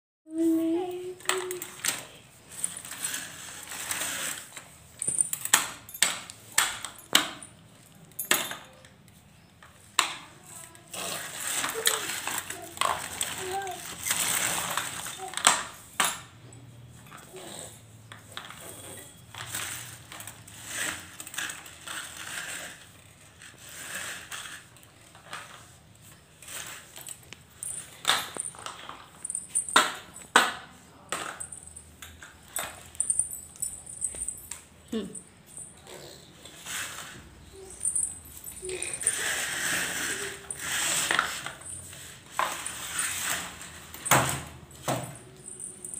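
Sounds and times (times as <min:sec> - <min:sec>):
baby walker wheels clattering: 0:35.6 - 0:45.9.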